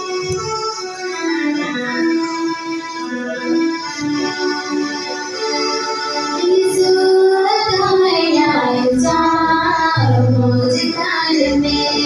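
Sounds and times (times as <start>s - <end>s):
instrumental accompaniment: 0.0s - 12.0s
voices singing a hymn: 6.6s - 12.0s.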